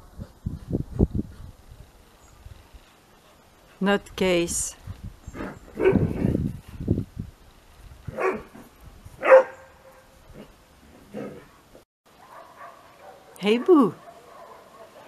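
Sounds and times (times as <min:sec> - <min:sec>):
dog barking: 0:05.8 - 0:06.1, 0:08.1 - 0:08.5, 0:09.2 - 0:10.1, 0:12.2 - 0:15.0.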